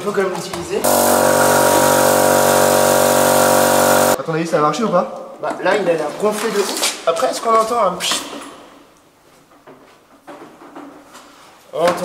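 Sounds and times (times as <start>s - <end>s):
electric air compressor humming: 0.8s - 4.2s.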